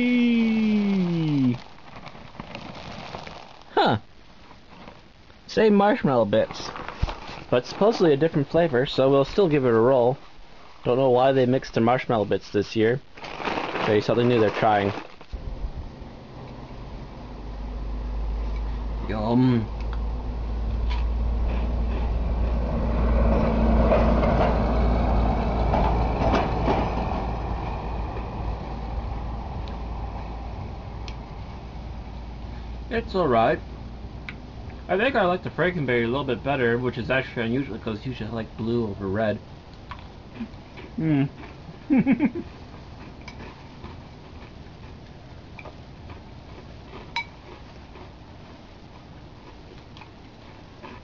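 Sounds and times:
steady low rumble: 0.0s - 40.8s
person chewing crunchy cereal: 0.4s - 3.7s, 13.2s - 15.4s, 39.9s - 41.8s, 42.4s - 45.2s, 46.0s - 51.0s.

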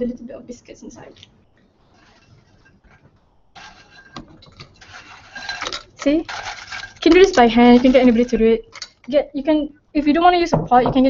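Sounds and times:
biscuits clattering into a pot: 3.6s - 9.1s.

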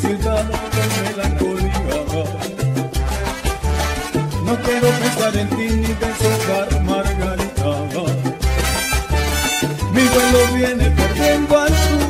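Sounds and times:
bass line: 0.0s - 12.0s
instrumental salsa music: 0.0s - 12.0s
percussion strokes: 8.3s - 12.0s.

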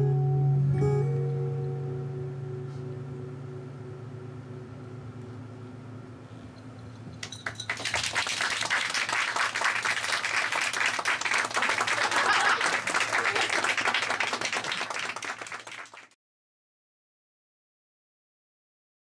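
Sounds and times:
small audience applauding: 7.2s - 16.2s.

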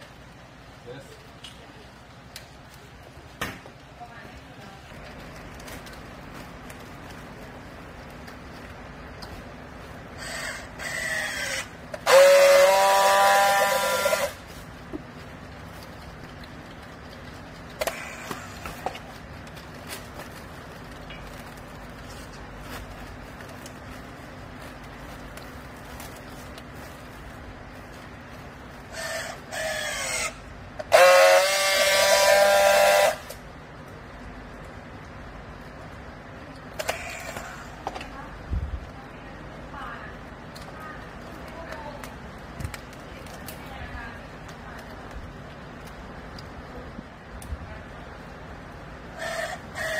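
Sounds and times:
low steady hum: 0.0s - 49.9s
strapping tool buzzing: 10.2s - 14.4s, 28.9s - 33.4s
strapping tool motor whine: 10.2s - 14.4s, 28.9s - 33.4s.

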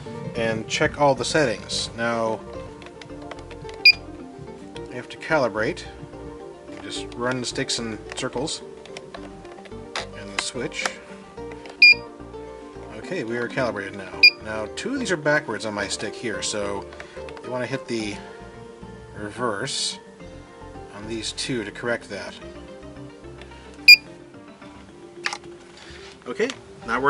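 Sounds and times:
background music with bass line: 0.0s - 27.0s.

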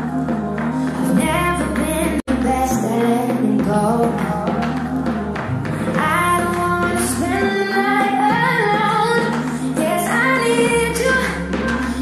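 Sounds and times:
woman singing pop song: 0.0s - 12.0s.

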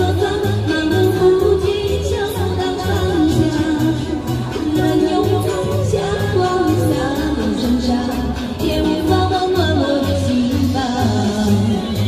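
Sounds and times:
amplified backing track with bass: 0.0s - 12.0s
woman singing pop song: 0.0s - 12.0s.

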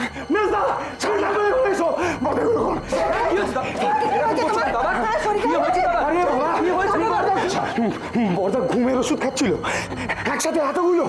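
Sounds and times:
agitated overlapping voices: 0.0s - 11.0s.

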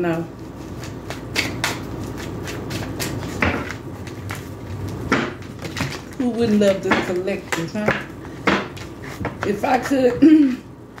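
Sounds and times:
cards being shuffled: 0.4s - 7.3s.

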